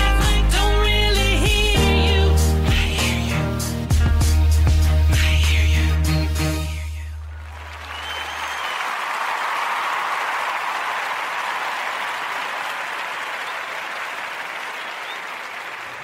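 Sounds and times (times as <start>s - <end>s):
audience applause: 7.4s - 16.0s.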